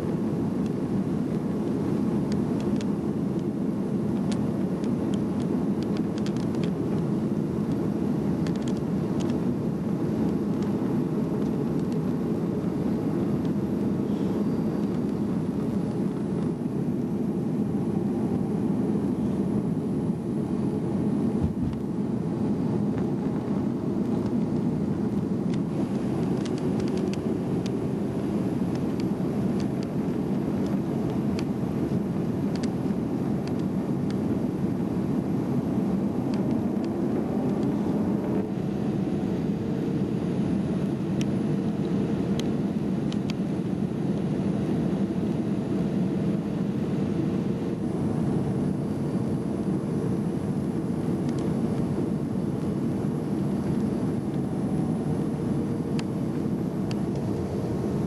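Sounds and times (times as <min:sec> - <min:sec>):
airliner cabin rumble: 0:00.0 - 0:58.0.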